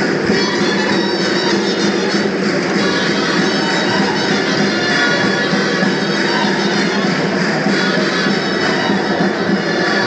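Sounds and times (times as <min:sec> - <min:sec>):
folk dance music: 0:00.0 - 0:10.0
reed wind instrument sustained notes: 0:00.0 - 0:10.0.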